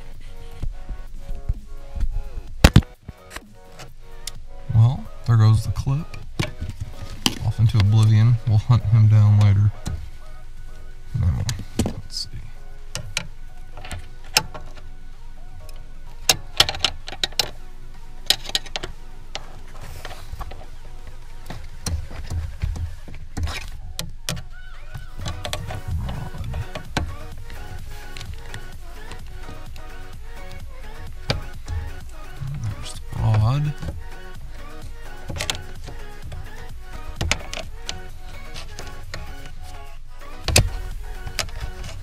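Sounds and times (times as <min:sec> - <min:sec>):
background music: 0:00.0 - 0:42.0
low thuds: 0:25.0 - 0:37.8.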